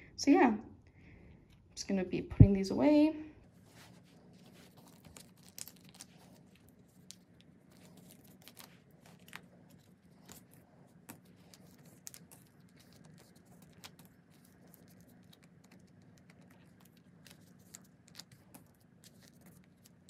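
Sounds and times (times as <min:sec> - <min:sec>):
plastic sleeves crinkling: 0:03.5 - 0:20.0.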